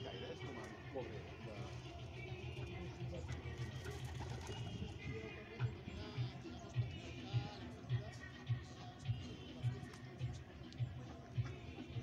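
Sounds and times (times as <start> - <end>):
pigeon cooing: 1.8 - 5.2.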